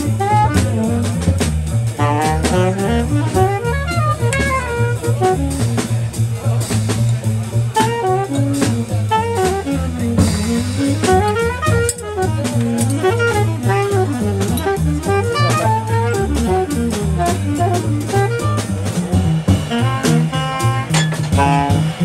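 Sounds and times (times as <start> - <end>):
saxophone solo: 0.0 - 6.0, 7.7 - 22.0
cymbals: 0.0 - 22.0
drum kit: 0.0 - 22.0
walking double bass: 0.0 - 22.0.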